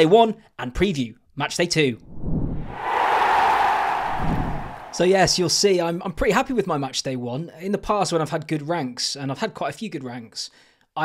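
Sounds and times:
whooshing transition effect: 2.1s - 5.1s.

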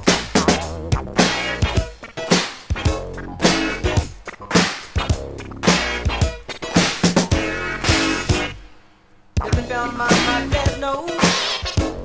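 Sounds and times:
cracking snare backbeat: 0.0s - 8.6s
bass: 0.0s - 12.0s.

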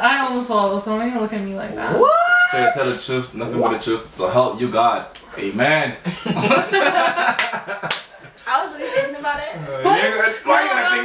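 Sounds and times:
people talking: 0.0s - 7.4s, 8.4s - 11.0s
people laughing: 6.0s - 11.0s.

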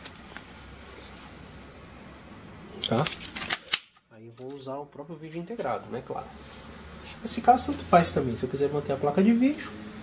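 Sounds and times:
crackling rustles and clicks: 0.0s - 0.5s.

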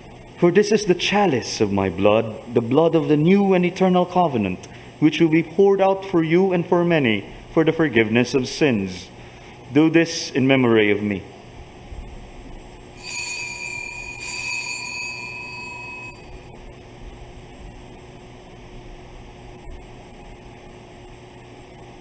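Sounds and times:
altar bell ringing: 13.0s - 16.6s.

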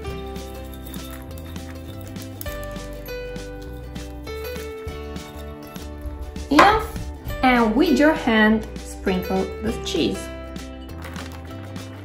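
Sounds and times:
background music: 0.0s - 12.0s
woman speaking: 6.5s - 10.3s.

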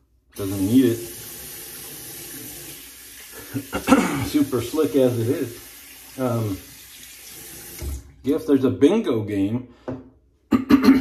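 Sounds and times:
faucet running into sink: 0.4s - 8.2s.

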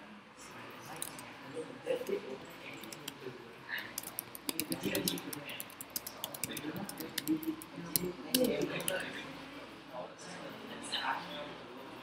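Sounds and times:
keyboard key clicks: 4.0s - 9.0s.

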